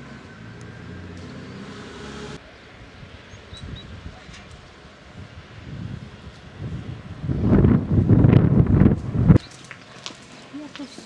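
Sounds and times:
wind buffeting microphone: 2.7s - 9.5s.

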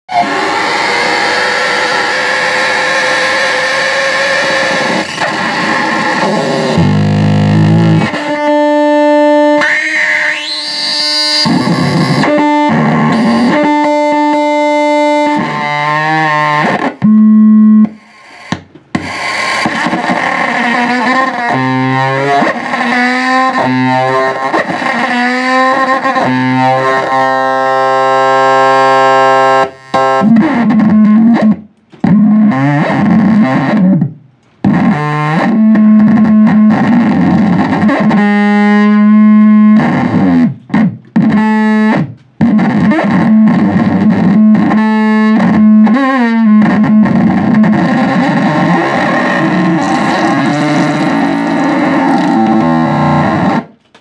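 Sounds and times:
distorted electric guitar noise: 0.0s - 54.0s.

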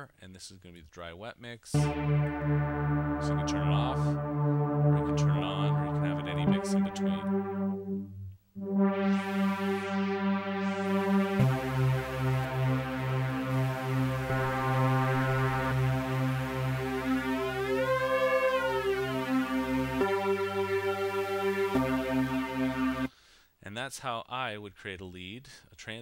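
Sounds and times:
buzzy synth lead: 1.8s - 23.1s.

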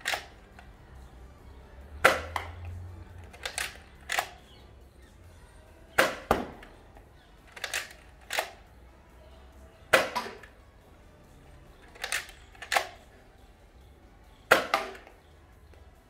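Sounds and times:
toy blaster clacking and snapping: 0.0s - 0.7s, 3.2s - 4.4s, 7.5s - 8.6s, 11.9s - 13.0s.

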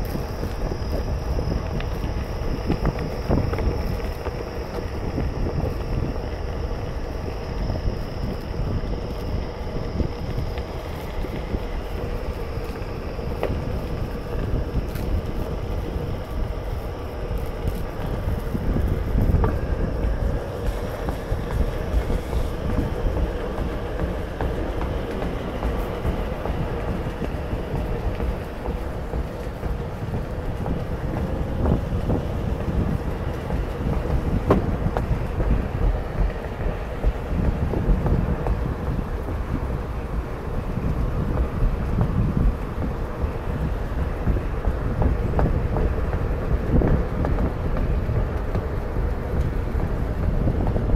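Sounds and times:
electric board rolling on pavement: 0.0s - 50.9s
faint steady whine: 0.0s - 50.9s
wind rumble on microphone: 0.0s - 50.9s.

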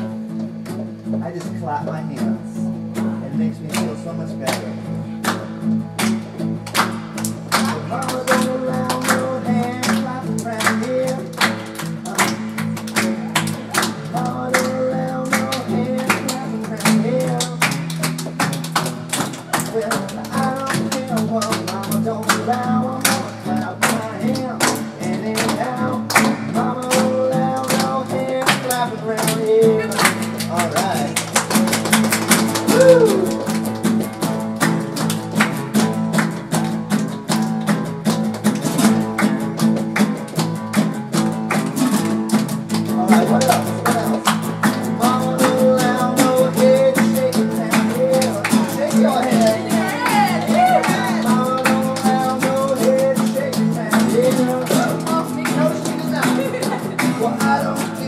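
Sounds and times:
acoustic guitars strummed: 0.0s - 58.0s
man singing: 1.2s - 4.9s, 7.5s - 18.1s, 19.2s - 31.5s, 42.7s - 58.0s.

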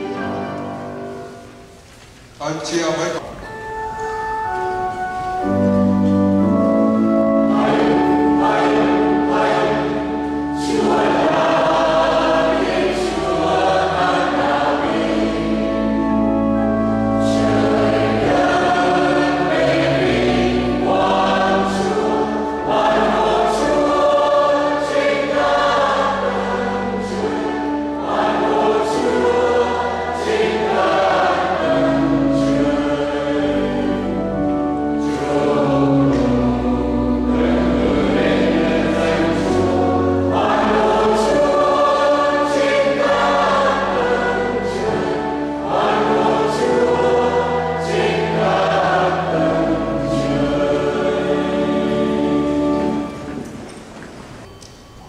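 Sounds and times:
mixed choir singing a hymn: 0.0s - 1.4s, 5.4s - 53.9s.

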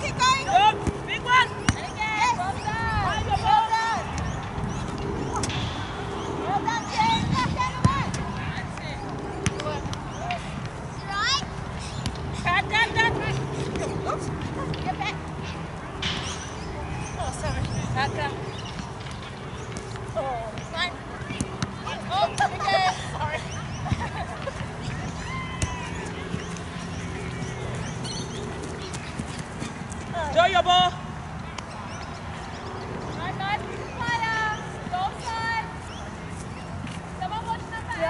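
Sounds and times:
outdoor field noise: 0.0s - 38.0s
steady low hum: 0.0s - 38.0s
voices calling out: 0.0s - 38.0s.

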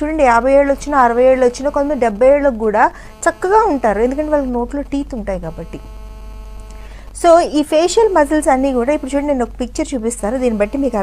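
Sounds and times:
woman speaking: 0.0s - 5.9s, 7.2s - 11.0s
electrical hum and buzz: 0.0s - 11.0s.

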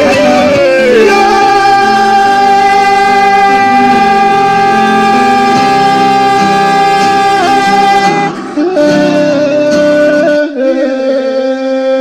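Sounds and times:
backing track: 0.0s - 12.0s
man singing: 0.0s - 12.0s.

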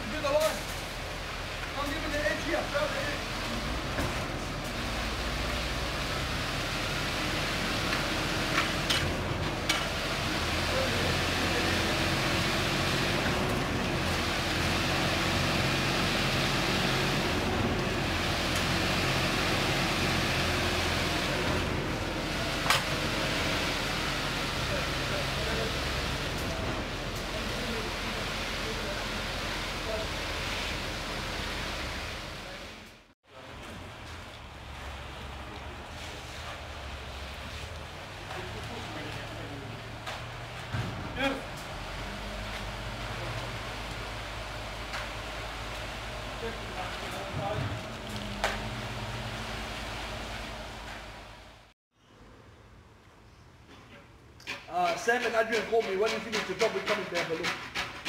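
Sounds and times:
concrete pump droning: 0.1s - 51.7s, 54.4s - 58.0s.

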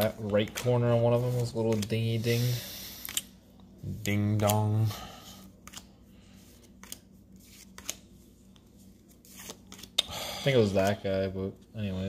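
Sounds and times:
low steady hum: 0.0s - 12.0s
cards snapping onto a pile: 6.8s - 8.0s.

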